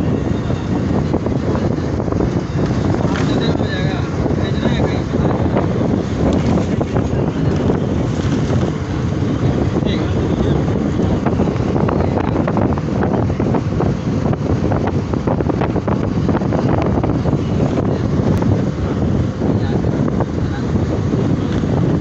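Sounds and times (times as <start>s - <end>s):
bus road and engine noise: 0.0s - 22.0s
wind buffeting microphone: 0.0s - 22.0s.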